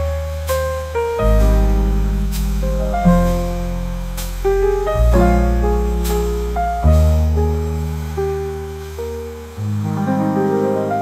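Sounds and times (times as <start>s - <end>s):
piano melody and chords: 0.0s - 11.0s
upright bass notes: 0.0s - 11.0s.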